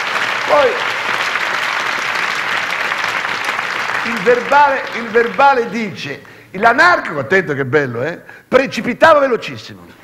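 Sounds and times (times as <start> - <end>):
audience applauding: 0.0 - 6.4
man speaking: 0.5 - 0.9, 4.0 - 10.0.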